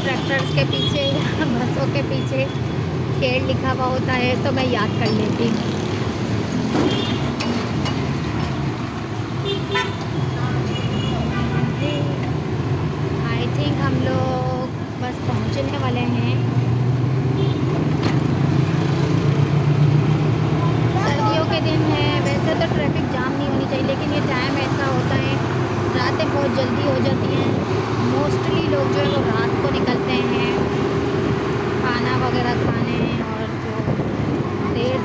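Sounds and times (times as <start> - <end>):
voices: 0.0 - 5.9, 13.2 - 16.6, 20.4 - 30.9, 31.8 - 35.0
auto-rickshaw engine running: 0.0 - 35.0
horns tooting: 9.4 - 12.1.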